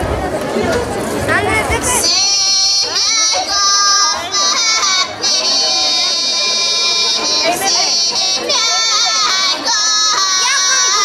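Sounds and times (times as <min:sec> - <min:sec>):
women's choir singing folk song: 0:02.0 - 0:11.0.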